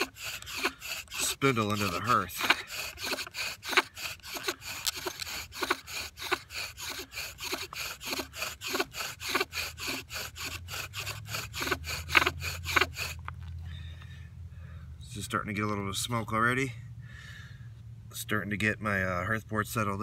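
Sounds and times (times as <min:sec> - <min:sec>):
bow drill spindle rasping: 0:00.0 - 0:13.5.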